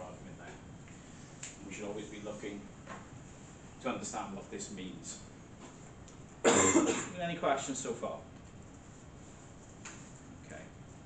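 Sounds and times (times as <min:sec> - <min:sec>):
man coughing: 0:06.4 - 0:07.2.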